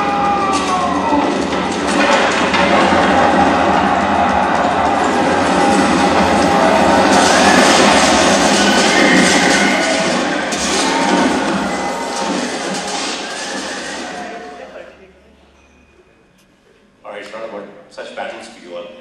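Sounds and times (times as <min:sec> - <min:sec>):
battle scene clash: 0:00.0 - 0:14.6.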